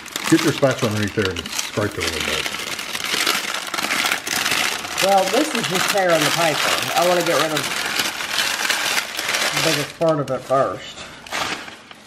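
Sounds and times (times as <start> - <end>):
brittle filling cracking: 0.0 - 12.0
parchment paper crinkling: 0.0 - 12.0.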